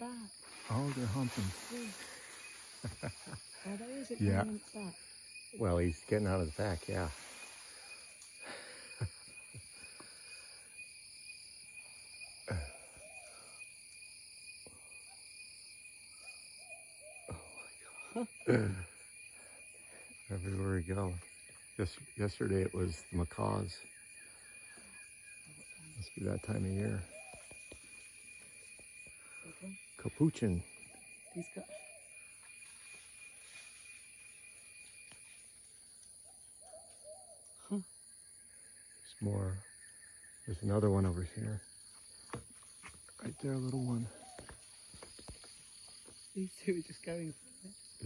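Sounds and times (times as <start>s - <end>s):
high-pitched insect chorus: 0.0s - 48.0s.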